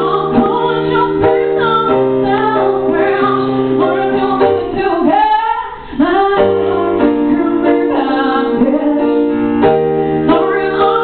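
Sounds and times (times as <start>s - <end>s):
woman singing: 0.0s - 9.6s, 10.2s - 11.0s.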